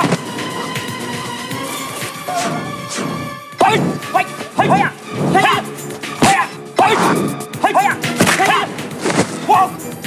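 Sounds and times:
background music: 0.0s - 10.0s
fighters yelling: 3.6s - 8.8s.

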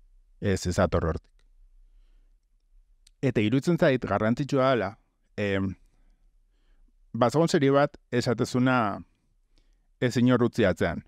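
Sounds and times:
man speaking: 0.4s - 1.3s, 3.2s - 5.8s, 7.1s - 9.1s, 10.0s - 11.0s
faint clicks: 2.3s - 3.2s.

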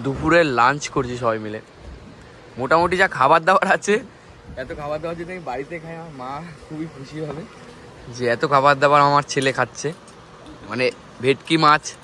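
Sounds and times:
men talking quietly: 0.0s - 12.0s.

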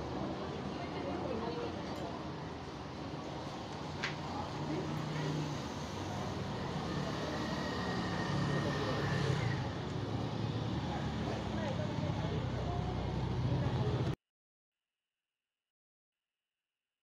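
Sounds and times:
crowd talking: 0.0s - 2.8s, 3.8s - 10.2s, 10.8s - 14.2s
motorbikes passing: 4.5s - 14.2s.

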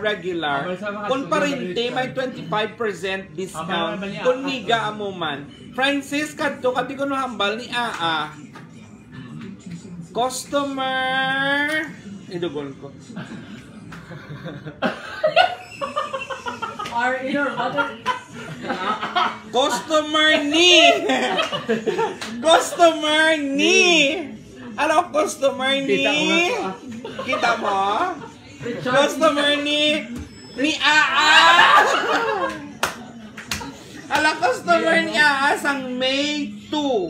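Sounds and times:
hand claps: 7.8s - 8.7s, 16.8s - 17.0s, 21.4s - 22.4s, 32.4s - 34.4s.

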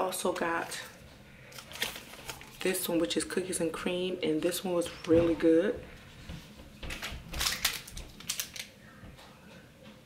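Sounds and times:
packaging crinkling and clicking: 1.5s - 2.6s, 6.9s - 8.7s.

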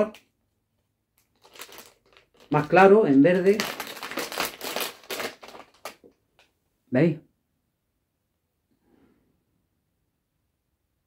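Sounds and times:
plastic packet crinkling: 1.1s - 6.5s.

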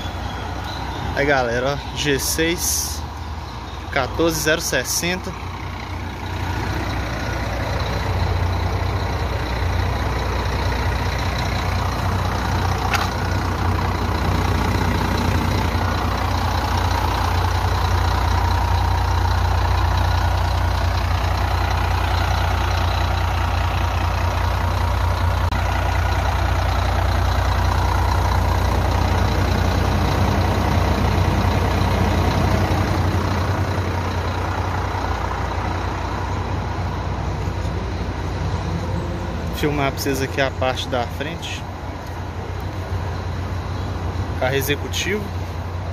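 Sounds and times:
diesel engine idling: 0.0s - 45.9s.

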